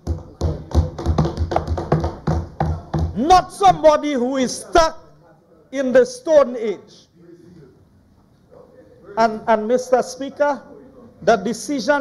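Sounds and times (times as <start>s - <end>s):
hands banging on wooden desks: 0.0s - 3.3s.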